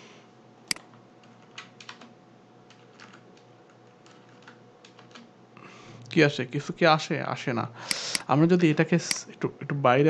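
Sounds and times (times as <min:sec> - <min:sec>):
low room hum: 0:00.0 - 0:10.0
computer keyboard taps: 0:00.7 - 0:02.1, 0:02.7 - 0:05.3.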